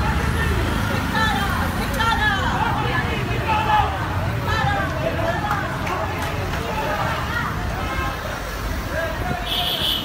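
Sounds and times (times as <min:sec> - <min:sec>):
indistinct voices: 0:00.0 - 0:09.6
rumble of vehicles: 0:00.0 - 0:10.0.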